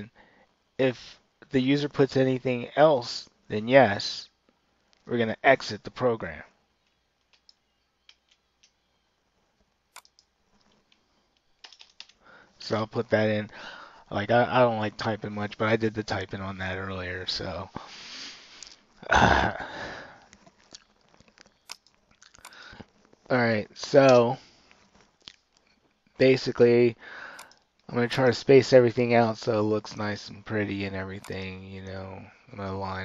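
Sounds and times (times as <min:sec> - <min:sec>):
computer mouse clicks: 0:06.8 - 0:08.8, 0:09.9 - 0:12.2, 0:20.3 - 0:22.7, 0:27.4 - 0:27.7
keyboard clicks: 0:09.9 - 0:12.2, 0:20.3 - 0:22.8, 0:31.2 - 0:31.5.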